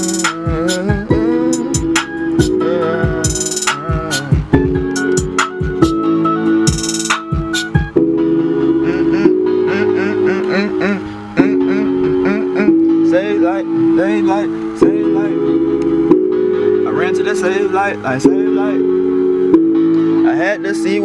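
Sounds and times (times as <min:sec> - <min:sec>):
light percussion: 0:00.0 - 0:06.1, 0:06.7 - 0:07.9
voice-like melody: 0:00.0 - 0:16.2
organ-like synth chords: 0:00.0 - 0:21.0.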